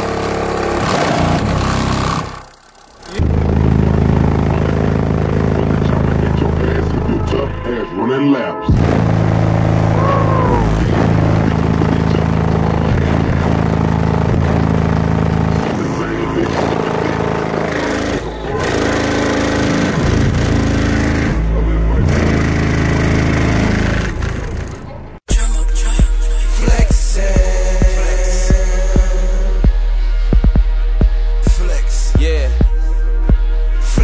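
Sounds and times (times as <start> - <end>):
bass-heavy music in a car: 3.1 - 34.0.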